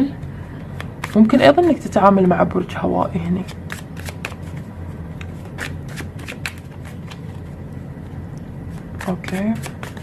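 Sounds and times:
steady low hum: 0:00.0 - 0:10.0
cards shuffling and flicking: 0:00.7 - 0:01.8, 0:03.4 - 0:07.4, 0:08.7 - 0:10.0.

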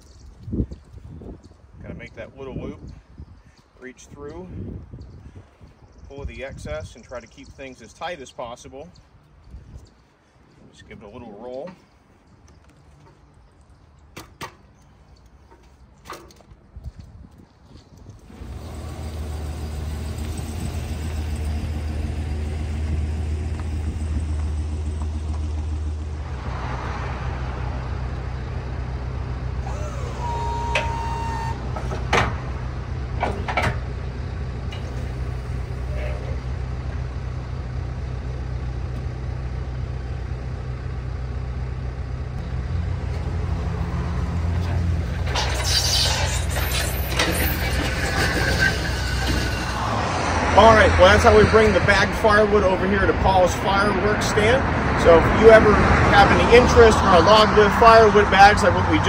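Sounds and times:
truck engine humming: 0:18.2 - 0:59.0.

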